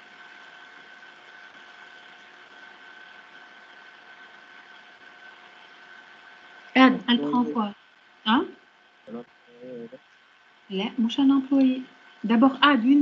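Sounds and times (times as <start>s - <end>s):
background hiss: 0.0s - 13.0s
high-pitched whine: 6.8s - 8.5s, 9.1s - 10.0s.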